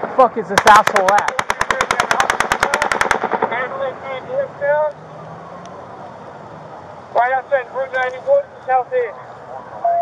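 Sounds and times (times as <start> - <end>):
distant automatic gunfire: 0.6 - 3.7.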